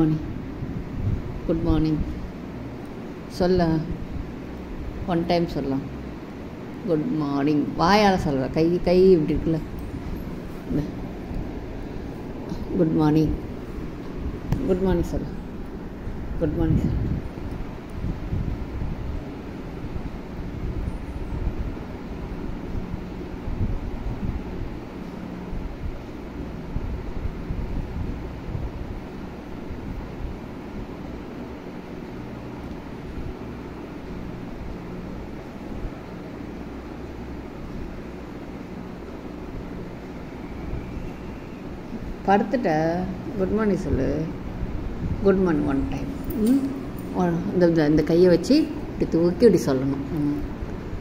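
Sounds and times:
wind rumble on microphone: 0:00.0 - 0:02.4, 0:07.8 - 0:36.5, 0:40.6 - 0:47.0
faint steady hum: 0:00.0 - 0:51.0.

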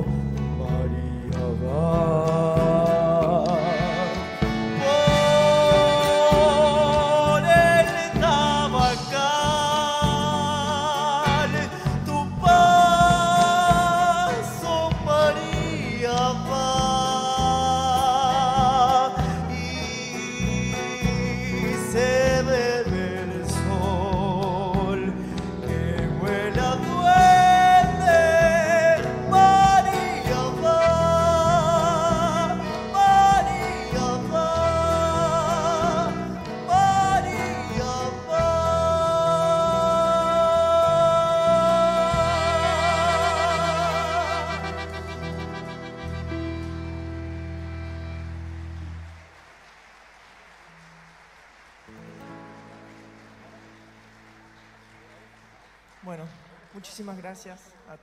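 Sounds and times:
accordion: 0:00.0 - 0:49.3
bass: 0:00.0 - 0:49.4
folk band playing: 0:00.0 - 0:49.4
guitar: 0:00.0 - 0:49.8, 0:50.7 - 0:58.0.

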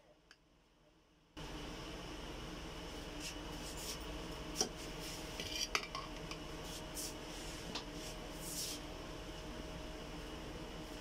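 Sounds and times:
steady background hum: 0:00.0 - 0:11.0
spoon scraping a ceramic plate: 0:05.4 - 0:05.9.

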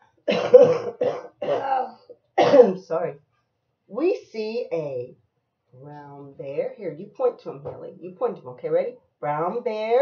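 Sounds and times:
woman coughing: 0:00.3 - 0:02.9.

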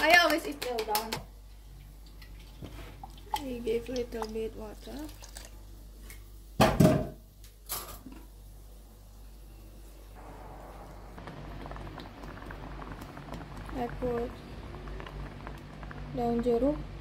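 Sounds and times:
sauce simmering with bubbling fizz: 0:08.7 - 0:17.0.

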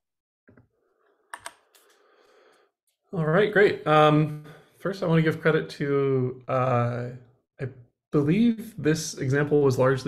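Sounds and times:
computer keyboard clicks: 0:01.3 - 0:01.9.

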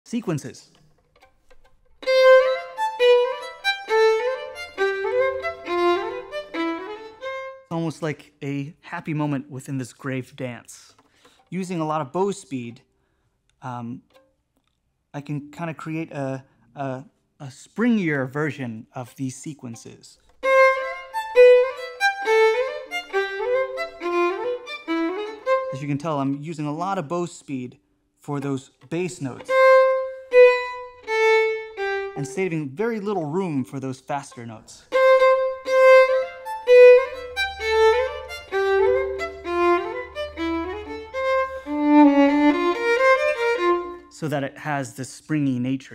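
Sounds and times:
solo violin: 0:00.2 - 0:08.1, 0:18.0 - 0:44.3.

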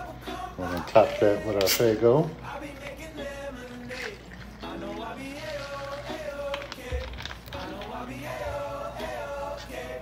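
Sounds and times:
background music: 0:00.0 - 0:10.0
soda pouring into glass over ice: 0:02.2 - 0:08.0.

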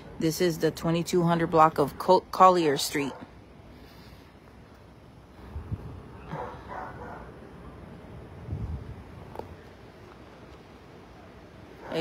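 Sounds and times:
dogs barking: 0:06.2 - 0:07.4.

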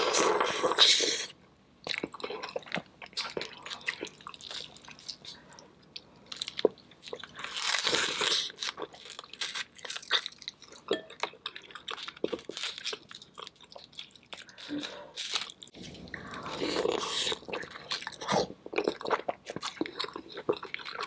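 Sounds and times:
chewing: 0:01.8 - 0:21.0.

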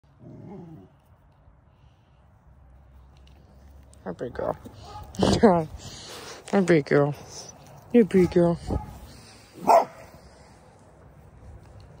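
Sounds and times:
dog growling: 0:00.2 - 0:00.9.

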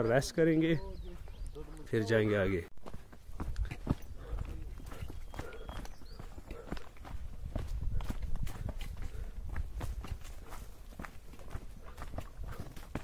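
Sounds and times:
footsteps crunching on dirt trail: 0:00.5 - 0:13.0.

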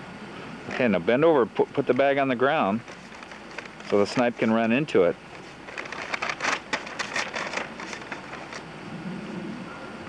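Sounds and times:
cardboard box crackling rustles: 0:01.8 - 0:08.7.

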